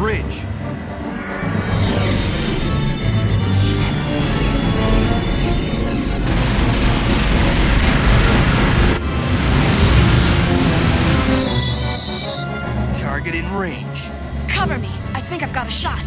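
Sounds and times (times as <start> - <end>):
dramatic action music: 0.0 - 16.0
loud rushing sound effects: 1.0 - 12.9.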